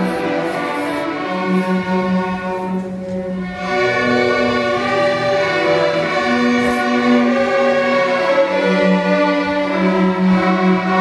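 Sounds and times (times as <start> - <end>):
string orchestra playing held chords: 0.0 - 11.0.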